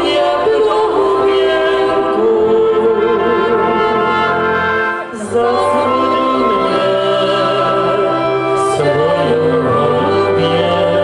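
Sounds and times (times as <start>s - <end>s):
vocal trio singing in harmony: 0.0s - 11.0s
brass band playing: 1.0s - 11.0s.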